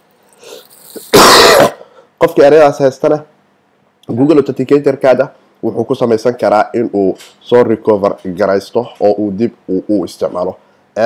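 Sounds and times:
person coughing: 1.0 - 2.0.

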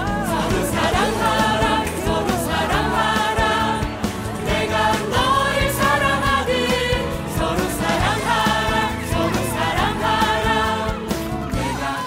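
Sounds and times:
choir singing with music: 0.0 - 12.0.

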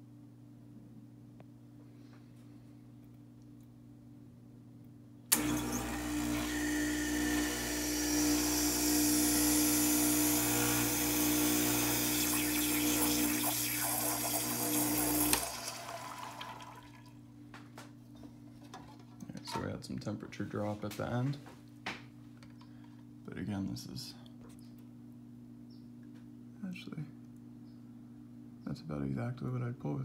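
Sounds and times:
espresso machine pump buzzing: 5.3 - 16.7.

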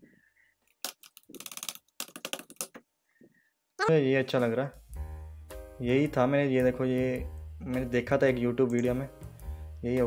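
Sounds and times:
typing on laptop keyboard: 0.9 - 2.8.

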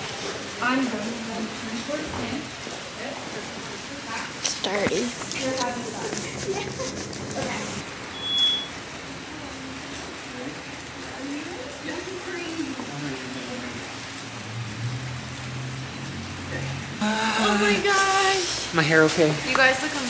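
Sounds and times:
rain hiss: 0.0 - 20.0
murmuring voices: 0.8 - 7.8, 16.5 - 18.9
short high beep: 8.1 - 8.8.

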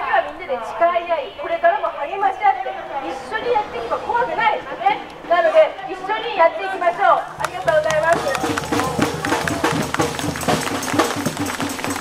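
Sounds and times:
voices chanting: 0.0 - 11.6
quick steady drum beat: 7.3 - 12.0.

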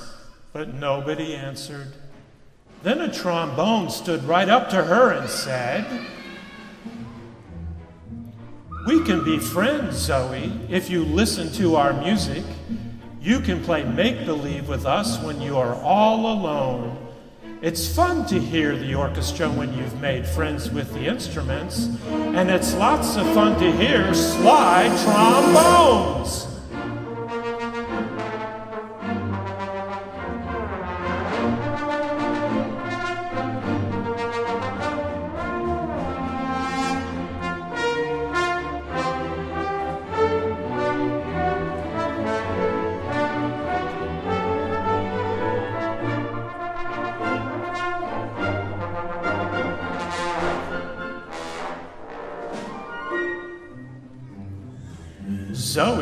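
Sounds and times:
orchestra with trombones: 21.2 - 56.0.

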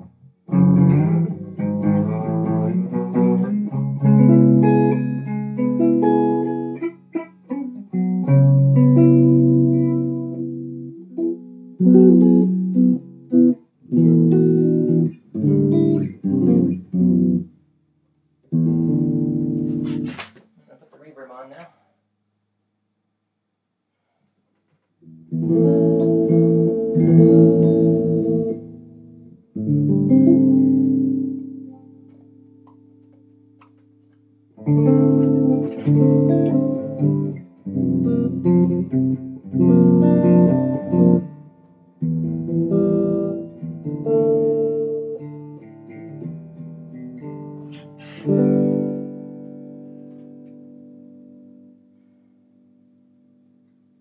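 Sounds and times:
electric guitar chords: 0.0 - 17.5, 18.5 - 20.3, 25.0 - 54.0.

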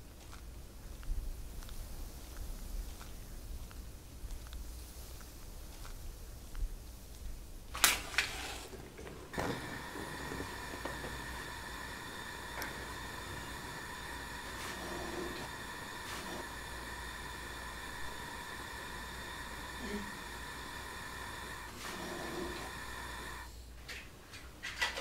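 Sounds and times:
faint high hum: 0.0 - 24.0
gas burner hiss: 1.0 - 23.9
gas hob igniter clicks: 9.3 - 14.6.

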